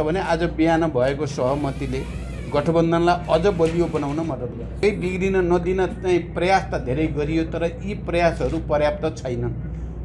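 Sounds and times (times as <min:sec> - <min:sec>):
man talking: 0:00.0 - 0:09.7.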